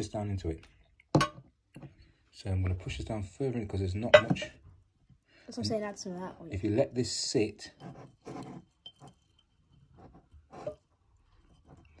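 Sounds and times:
soft handling sounds in glass jar: 7.4 - 12.0.

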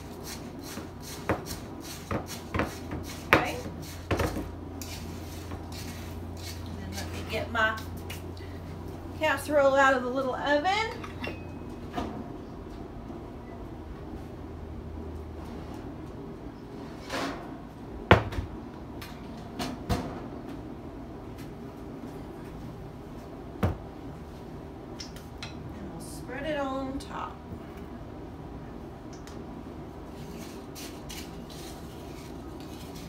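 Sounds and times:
low steady hum: 0.0 - 33.0
kitchen knocks and clunks: 18.1 - 18.5, 23.6 - 23.8.

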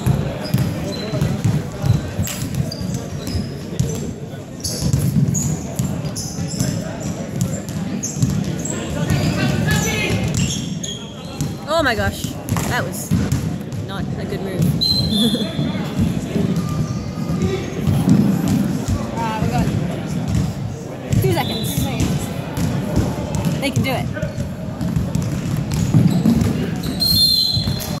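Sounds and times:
players calling out: 14.6 - 18.2.

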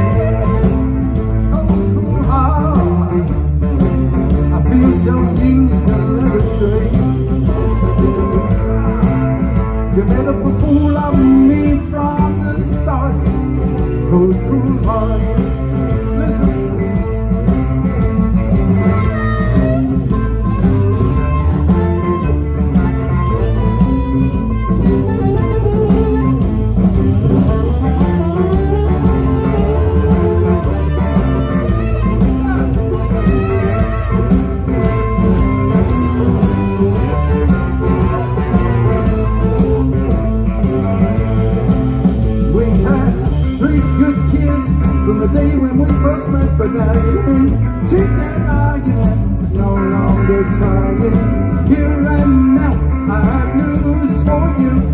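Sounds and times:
drum kit beat: 0.0 - 54.9
electric guitars: 0.0 - 54.9
harmonica: 0.0 - 54.9.

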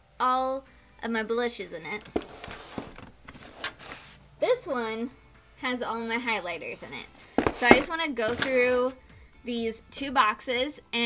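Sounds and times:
cardboard rustling: 2.0 - 4.2, 7.3 - 9.0
boxes knocking and clattering: 2.1 - 4.0, 7.3 - 8.7.

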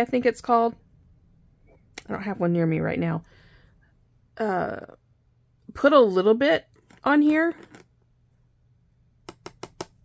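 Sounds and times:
glue pen clicking on plastic sheet: 9.3 - 10.0.

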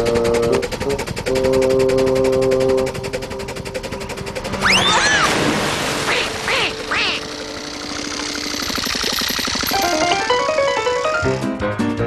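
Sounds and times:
cartoon duck quacking: 6.0 - 7.4
background music: 9.8 - 12.0.

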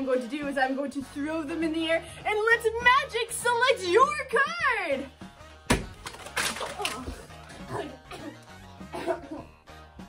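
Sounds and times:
objects landing with thump: 5.7 - 7.1
cards and balls scattering: 5.7 - 7.5.

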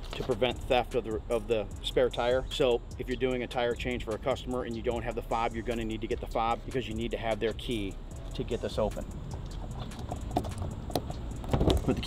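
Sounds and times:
low background rumble: 0.0 - 12.0
key fob clicks and taps: 9.4 - 12.0.

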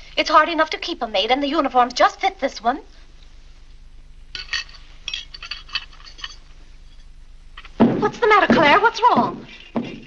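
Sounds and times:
knife and fork clinking on plate: 4.3 - 7.1.

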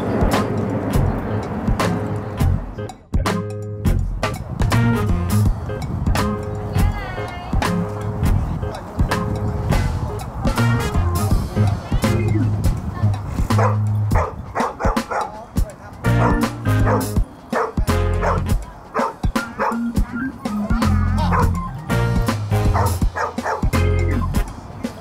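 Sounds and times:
music with steady bass beat: 0.2 - 25.0
dogs barking in play: 13.5 - 15.4, 16.1 - 24.0.

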